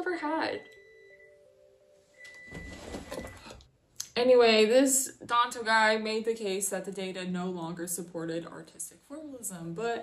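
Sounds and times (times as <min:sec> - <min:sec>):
rustling and handling noise: 0:02.2 - 0:03.7.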